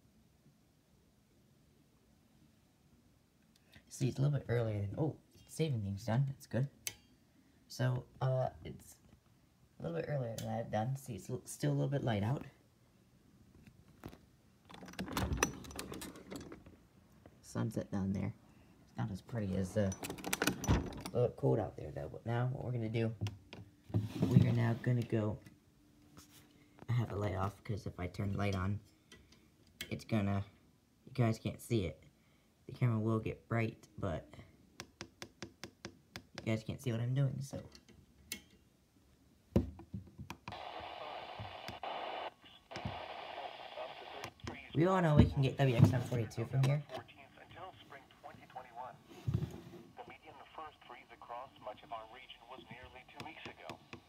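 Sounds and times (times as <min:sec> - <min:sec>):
window clicking and rattling: 0:14.6 - 0:16.8, 0:20.0 - 0:21.2
radio static hiss: 0:40.5 - 0:54.0.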